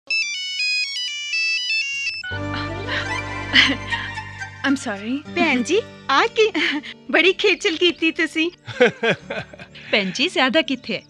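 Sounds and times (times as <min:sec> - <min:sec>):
electronic phone ringtone: 0:00.1 - 0:03.7.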